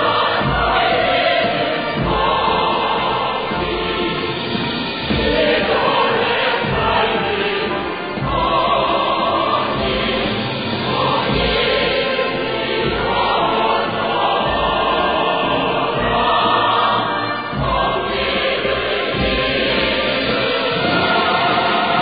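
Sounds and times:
choir singing with instruments: 0.0 - 22.0.

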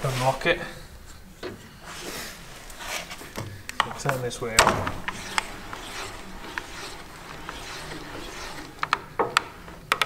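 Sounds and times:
lever rubbing and handling: 1.0 - 10.0.

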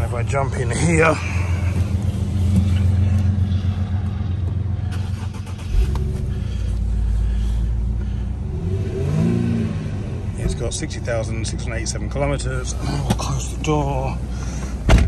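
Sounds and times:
car engine running: 0.0 - 15.0
engine starting thump: 4.9 - 6.7.

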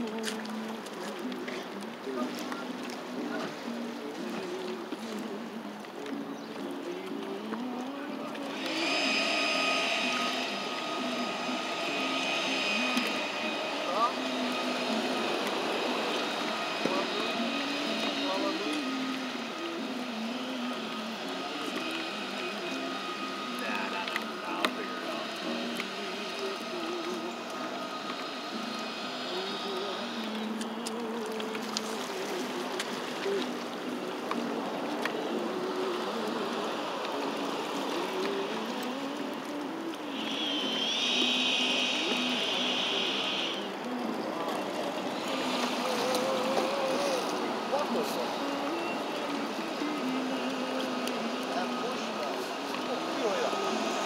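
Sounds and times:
steady background hum: 0.0 - 54.0
thin high whine: 0.0 - 54.0
indistinct voices talking: 6.1 - 54.0.

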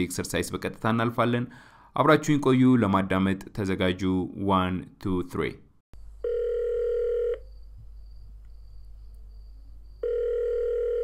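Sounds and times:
telephone ringback tone: 6.2 - 7.4, 10.0 - 11.0.

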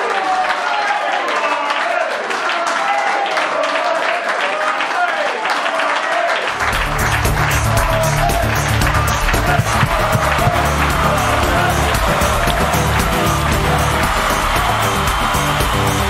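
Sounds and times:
audience applause: 0.0 - 16.0
music with heavy bass and beat: 6.6 - 16.0.

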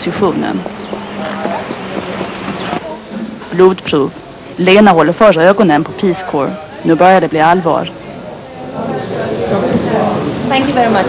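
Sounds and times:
faint indistinct voices: 0.0 - 11.0
horse hoofbeats on dirt: 0.2 - 2.9.

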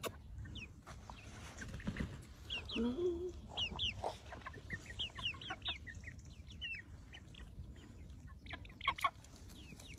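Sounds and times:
chicks peeping: 0.0 - 9.9.

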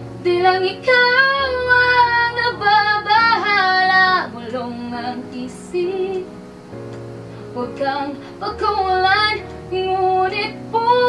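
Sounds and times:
quiet accompaniment: 0.0 - 11.0
woman singing: 0.2 - 6.4, 7.5 - 11.0.

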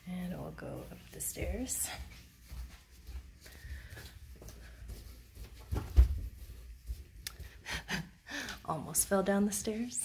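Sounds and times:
footsteps on carpeted stairs: 0.0 - 10.0.

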